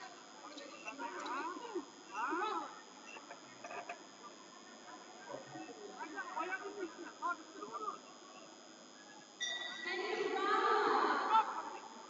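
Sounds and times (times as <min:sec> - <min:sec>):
voices shouting: 0:09.4 - 0:12.0.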